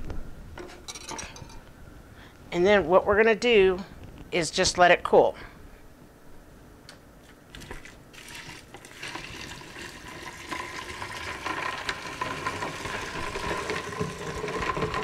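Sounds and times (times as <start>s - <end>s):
liquid pouring onto ice: 7.5s - 15.0s.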